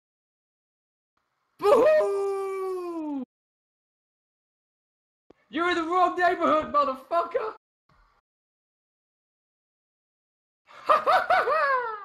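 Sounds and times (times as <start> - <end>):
man whooping: 1.6 - 3.3.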